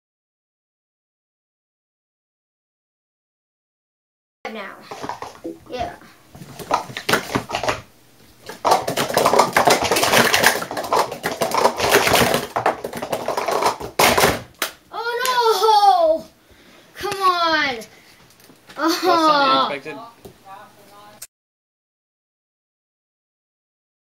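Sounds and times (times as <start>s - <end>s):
plastic cups clattering on a mat: 4.8s - 14.8s.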